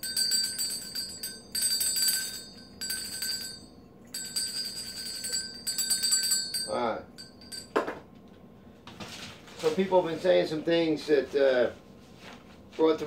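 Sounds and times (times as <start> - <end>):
metal hand bell ringing: 0.0 - 7.9.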